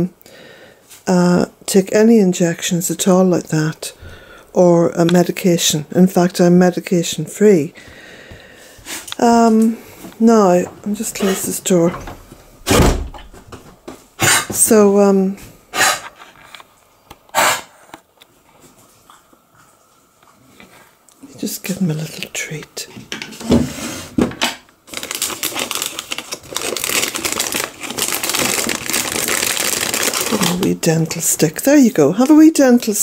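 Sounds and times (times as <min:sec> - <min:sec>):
door shutting with heavy thump: 0:11.9 - 0:13.6
plastic wrapper crinkling: 0:24.8 - 0:31.7.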